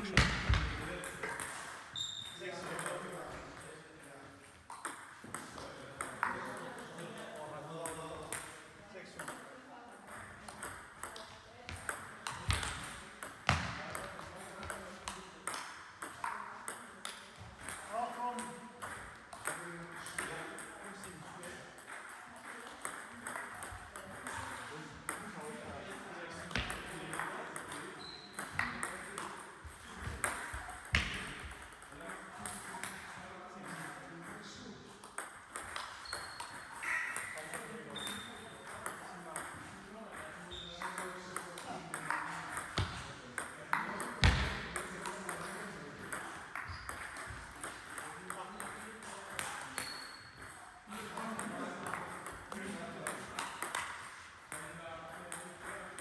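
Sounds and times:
ball bouncing on table: 0:00.0 - 0:01.6, 0:04.7 - 0:06.6, 0:10.1 - 0:17.8, 0:26.5 - 0:33.0, 0:35.0 - 0:45.5, 0:46.1 - 0:50.6, 0:51.2 - 0:54.0
ping pong ball clicking off bats: 0:04.7 - 0:07.0, 0:10.1 - 0:20.7, 0:21.5 - 0:24.5, 0:26.5 - 0:33.0, 0:35.0 - 0:56.0.

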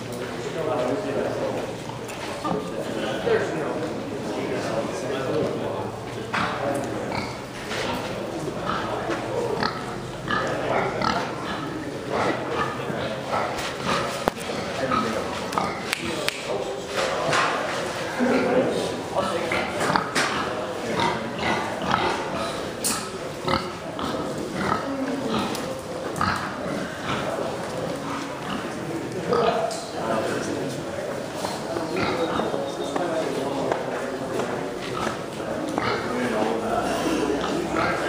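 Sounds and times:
indistinct background talking: 0:00.0 - 0:38.0
murmur of voices: 0:00.0 - 0:38.0.

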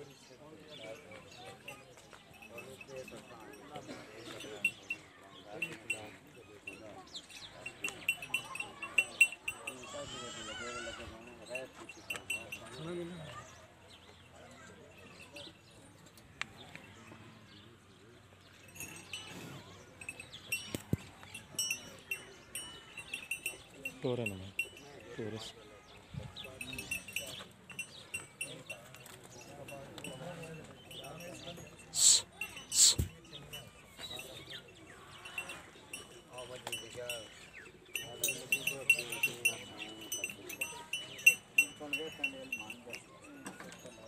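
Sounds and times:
distant people talking: 0:00.0 - 0:44.0
small metal bells tinkling: 0:00.0 - 0:44.0.

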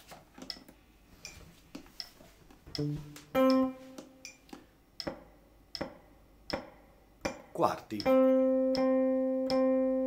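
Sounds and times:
metronome clicking: 0:02.0 - 0:05.9, 0:06.5 - 0:10.0
guitar chord ringing: 0:02.8 - 0:04.0, 0:08.1 - 0:10.0.

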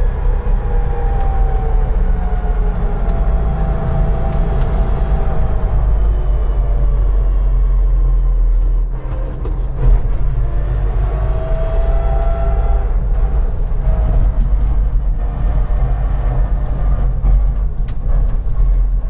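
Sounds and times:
faint transmission gear whine: 0:00.0 - 0:19.0
road rumble: 0:00.0 - 0:19.0.

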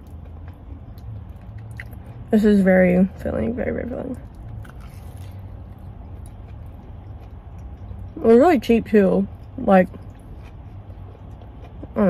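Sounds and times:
low steady hum: 0:00.0 - 0:12.0
soft chewing sounds: 0:00.0 - 0:12.0.

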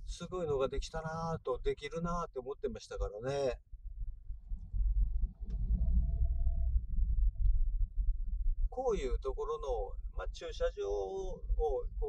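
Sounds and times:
car driving from inside cabin: 0:03.7 - 0:12.0
faint thin tone: 0:05.5 - 0:07.5.

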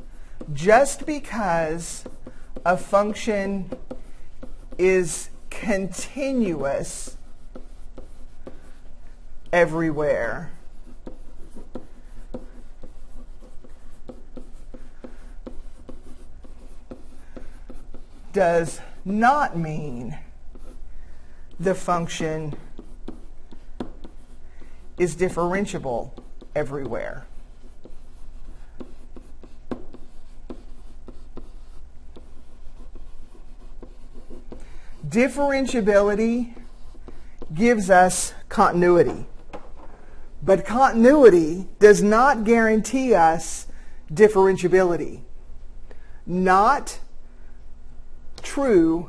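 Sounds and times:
stylus tapping and scratching screen: 0:00.0 - 0:43.6.

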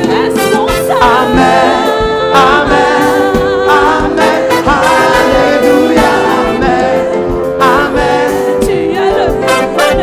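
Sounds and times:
choir singing: 0:00.0 - 0:10.0
instrumental accompaniment with low beat: 0:00.0 - 0:10.0.

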